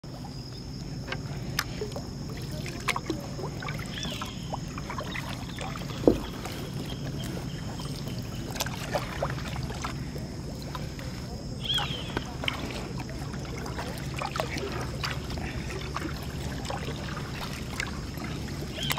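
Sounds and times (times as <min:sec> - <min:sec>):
paddle splashing through water: 0:00.0 - 0:18.9.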